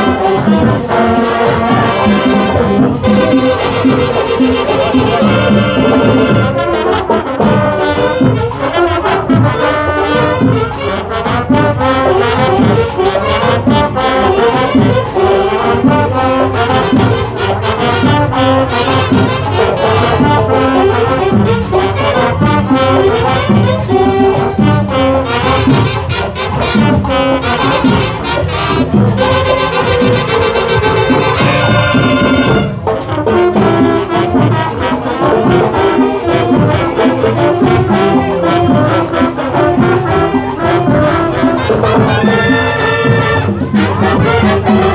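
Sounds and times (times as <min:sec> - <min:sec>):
marching band playing: 0:00.0 - 0:44.9.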